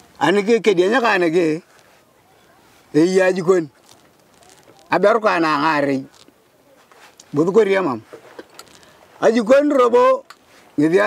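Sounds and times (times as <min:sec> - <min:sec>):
man speaking: 0:00.2 - 0:01.7, 0:02.9 - 0:03.7, 0:04.8 - 0:06.1, 0:09.2 - 0:11.0.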